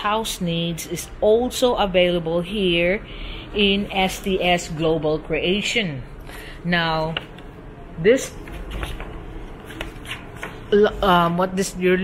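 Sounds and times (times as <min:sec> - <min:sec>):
low steady room hum: 0:00.0 - 0:12.0.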